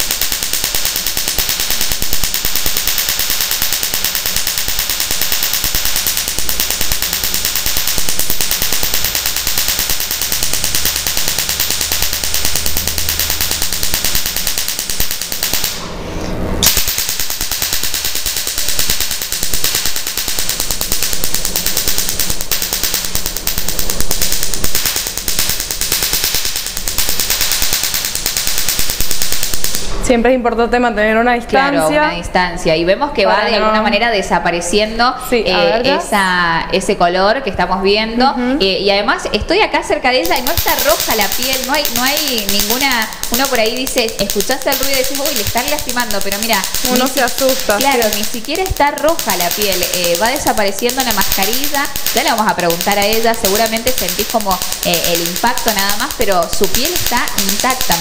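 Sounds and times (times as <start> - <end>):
laser pulses crackling: 0.0 - 30.0, 31.5 - 32.1, 39.8 - 58.0.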